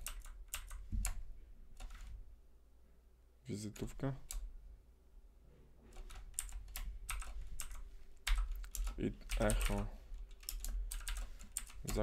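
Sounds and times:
keyboard typing clicks: 0:06.0 - 0:12.0.

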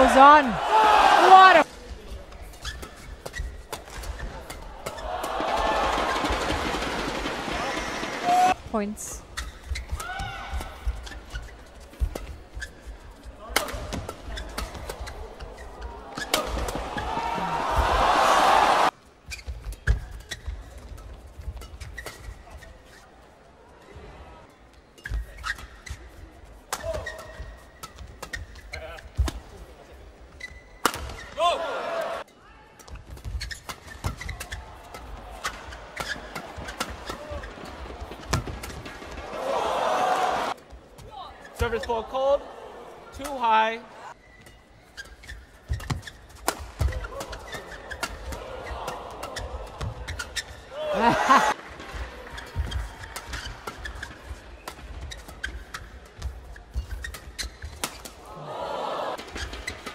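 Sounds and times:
crowd cheering: 0:00.0 - 0:01.6, 0:04.6 - 0:08.6, 0:16.0 - 0:18.9, 0:31.4 - 0:32.2, 0:38.9 - 0:40.6, 0:48.2 - 0:49.9, 0:50.7 - 0:52.6, 0:58.2 - 0:59.2.

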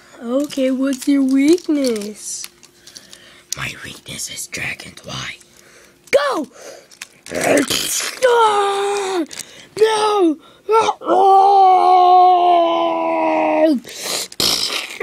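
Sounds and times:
handling noise rustling: 0:00.2 - 0:03.5
person voicing dragon cries: 0:10.7 - 0:13.8.

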